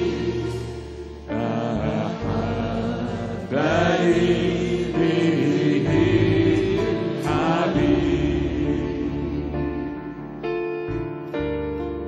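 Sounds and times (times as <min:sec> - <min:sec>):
band accompaniment: 0:00.0 - 0:12.0.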